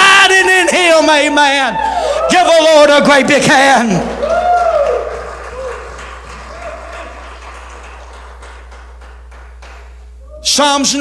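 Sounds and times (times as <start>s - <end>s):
congregation applauding: 0.0s - 10.5s.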